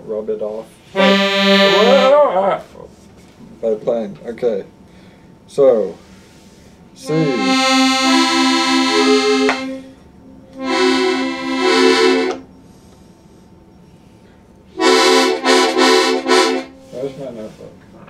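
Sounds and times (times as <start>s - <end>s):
accordion playing short phrases: 0.9s - 2.2s, 7.0s - 9.8s, 10.6s - 12.3s, 14.8s - 17.6s.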